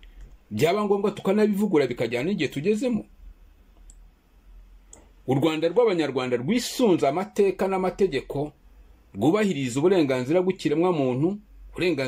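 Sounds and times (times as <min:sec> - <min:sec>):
faint clicks: 0:00.0 - 0:00.4, 0:03.7 - 0:04.1, 0:04.8 - 0:05.1.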